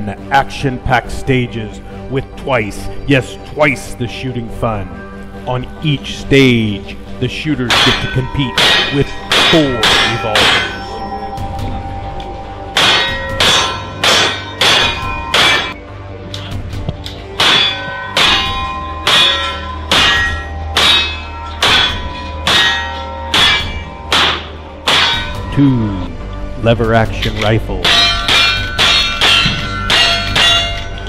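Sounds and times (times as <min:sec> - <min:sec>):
steel target ringing clang: 0:07.7 - 0:11.4, 0:12.7 - 0:15.8, 0:17.4 - 0:25.7, 0:27.8 - 0:31.0.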